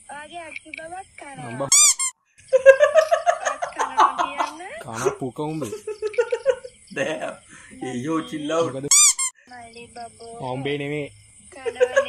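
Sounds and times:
person speaking: 0.0 - 1.9, 2.8 - 12.0
high-pitched squeak: 1.7 - 2.2, 8.9 - 9.4.

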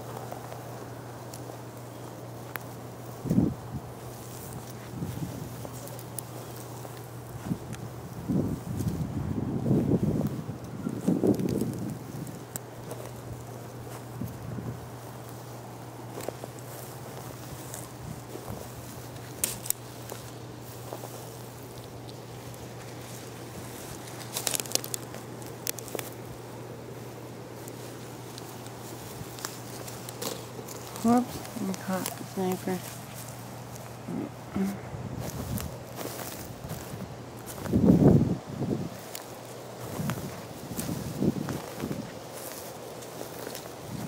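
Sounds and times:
dry leaves crackling underfoot: 0.0 - 44.0.

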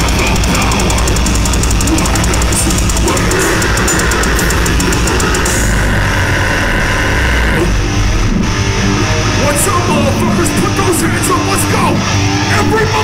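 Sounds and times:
bass guitar: 0.0 - 13.0
distorted guitars: 0.0 - 13.0
drums: 0.0 - 13.0.

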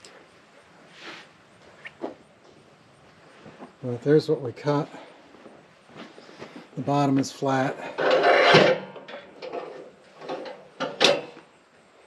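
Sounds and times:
soft rustle: 0.1 - 4.0, 4.8 - 8.5.

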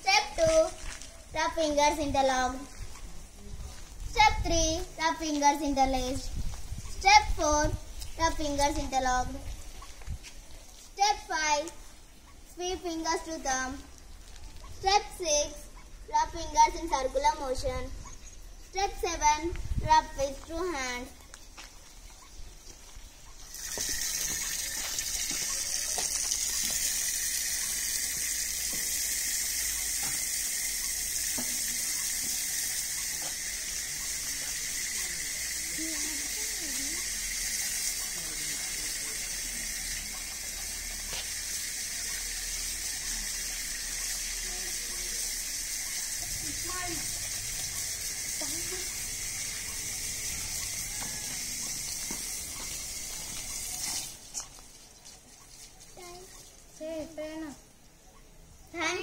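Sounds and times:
tap water running into trough: 23.5 - 54.3.

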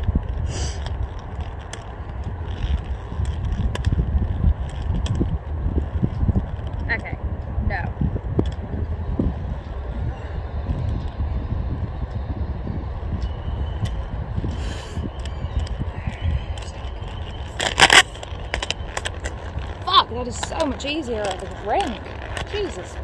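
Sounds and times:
roller skate wheels rolling: 0.0 - 23.0
wind on microphone: 0.0 - 23.0
skates clattering: 16.6 - 23.0.

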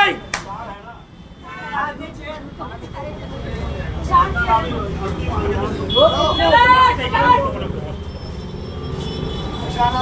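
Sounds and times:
people talking and calling out: 0.0 - 10.0.

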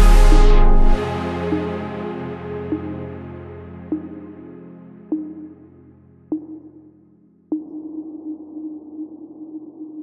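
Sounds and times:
struck synth notes: 0.0 - 5.8.

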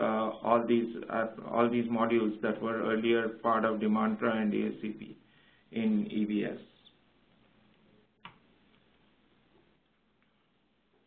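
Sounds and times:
presentation slide click: 7.7 - 8.8.

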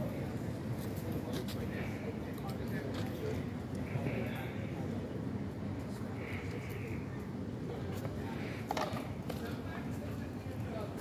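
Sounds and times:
indistinct street voices: 0.0 - 11.0.

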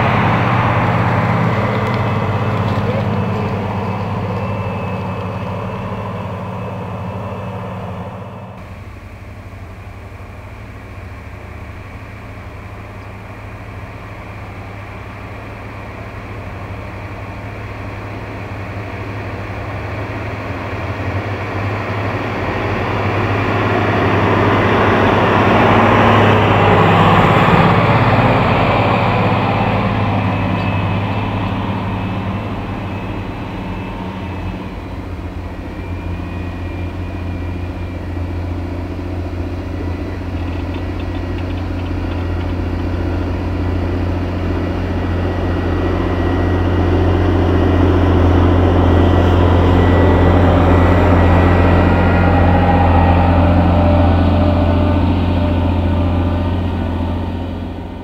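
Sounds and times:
tractor diesel engines droning: 0.0 - 58.0.

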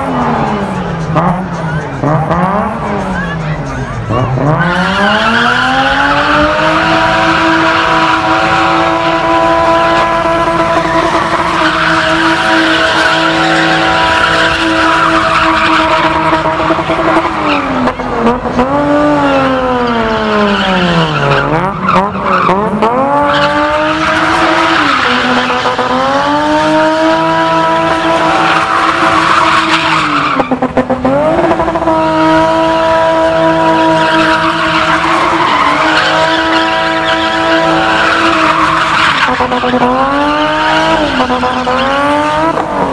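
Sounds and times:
car engine revving: 0.0 - 42.9
tyres screeching: 0.9 - 18.2, 19.0 - 26.3, 33.1 - 42.6.

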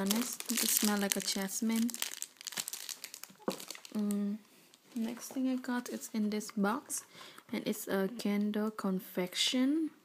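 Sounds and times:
plastic bag crinkling: 0.0 - 6.2.

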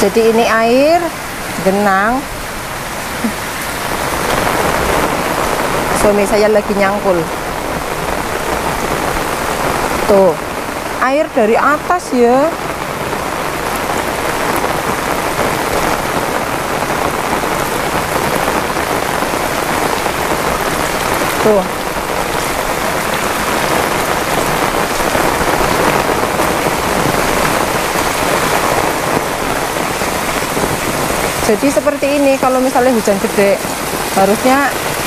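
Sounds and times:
heavy rain downpour: 0.0 - 35.0.

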